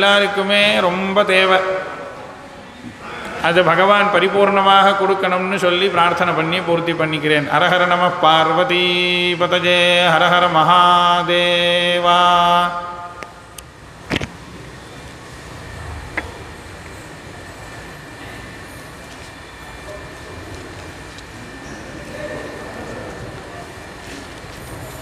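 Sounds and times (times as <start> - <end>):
hall rumble and hiss: 0.0 - 25.0.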